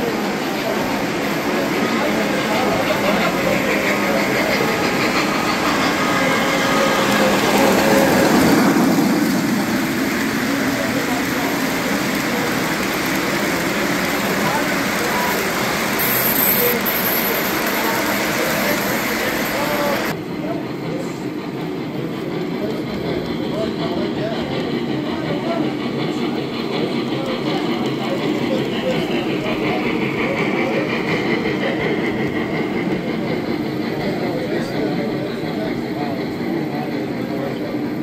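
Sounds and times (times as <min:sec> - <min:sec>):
model train wheels on track: 0:00.0 - 0:38.0
people chattering: 0:00.0 - 0:38.0.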